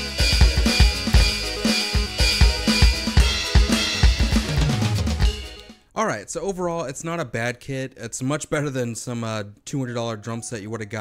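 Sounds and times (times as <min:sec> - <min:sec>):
backing track music: 0:00.0 - 0:05.9
electronic drum kit played: 0:00.0 - 0:05.9.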